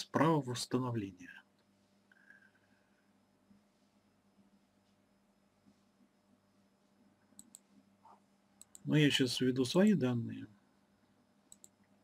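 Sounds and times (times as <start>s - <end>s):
computer mouse clicks: 7.3s - 7.7s, 8.6s - 8.9s, 11.5s - 11.9s.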